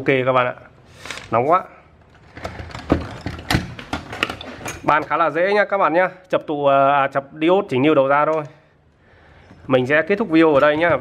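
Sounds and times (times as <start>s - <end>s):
items knocking on workbench: 2.3s - 5.1s.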